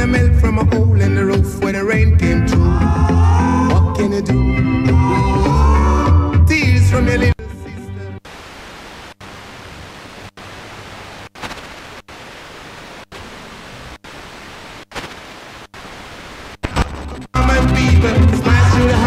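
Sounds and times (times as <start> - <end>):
radio station music: 0.0 - 19.0
faint weak radio stations: 7.3 - 19.0
radio interstation hiss: 7.9 - 19.0.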